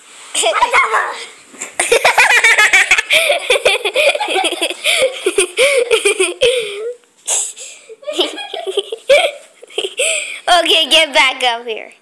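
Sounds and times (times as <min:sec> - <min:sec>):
child giggling: 0:01.8 - 0:07.0, 0:07.9 - 0:11.2
child gasping: 0:06.4 - 0:08.0, 0:10.0 - 0:10.5.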